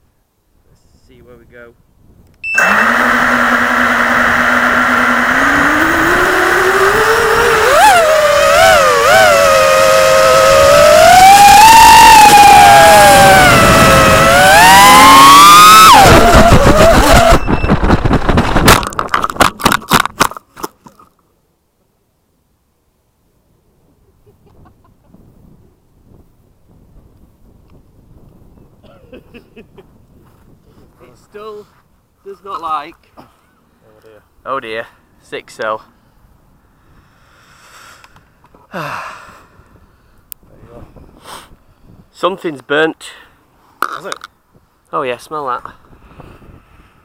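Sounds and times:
drone motors whining: 0:02.5 - 0:18.2
motor whine stuttering pulses: 0:02.5 - 0:19.0.

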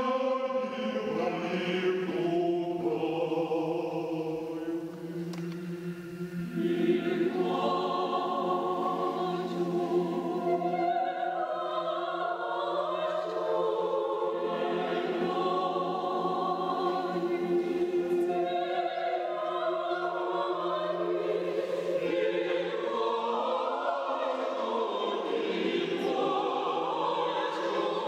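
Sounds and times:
mixed choir singing a cappella: 0:00.0 - 0:28.0.

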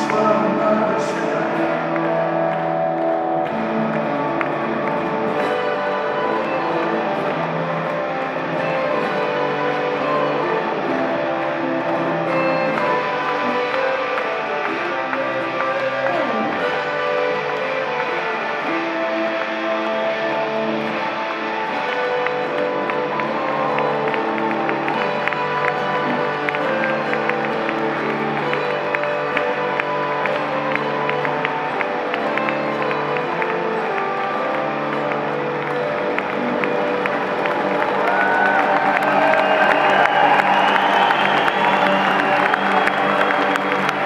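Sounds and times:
acoustic guitar strumming: 0:00.0 - 0:44.0
audience applause and cheering: 0:00.0 - 0:44.0
lap steel guitar: 0:00.0 - 0:44.0
mandolin: 0:00.0 - 0:44.0.

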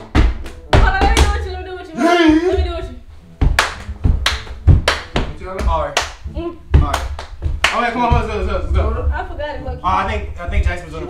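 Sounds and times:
sharp hand claps or slaps: 0:00.0 - 0:01.5, 0:03.4 - 0:06.2, 0:06.8 - 0:08.2.

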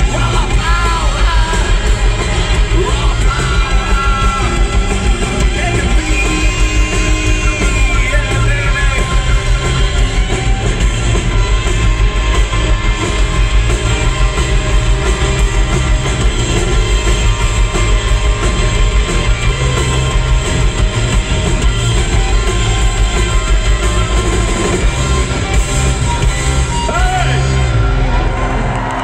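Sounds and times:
live rock band with horns: 0:00.0 - 0:29.0.

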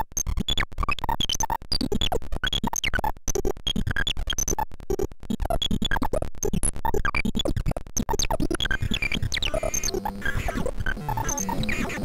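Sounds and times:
electronic clicks: 0:00.0 - 0:12.0.

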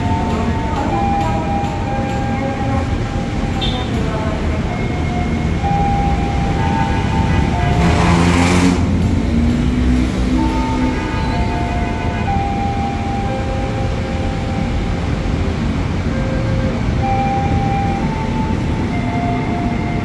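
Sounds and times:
electric train motors whining: 0:00.0 - 0:20.0
low train rumble: 0:00.0 - 0:20.0.

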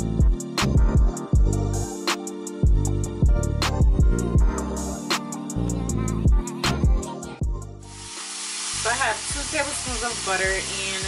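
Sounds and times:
background music with singing: 0:00.0 - 0:11.0
vegetables sizzling in skillet: 0:07.8 - 0:11.0.

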